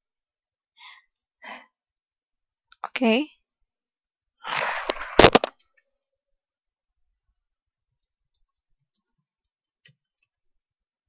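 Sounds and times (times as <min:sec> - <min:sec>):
sharp crackling burst: 0:04.4 - 0:05.5
faint keyboard clicks: 0:08.0 - 0:10.4.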